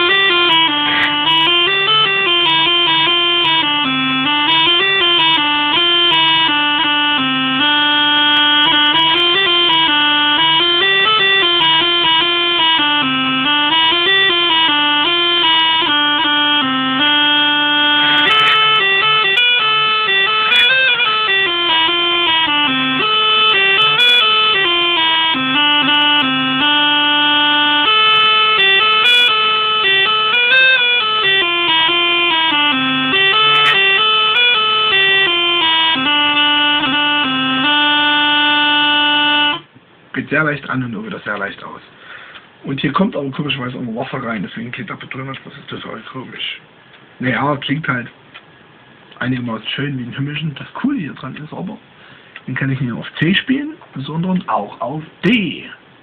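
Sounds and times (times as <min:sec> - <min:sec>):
small bagpipe melody over drone: 0:00.0 - 0:39.7.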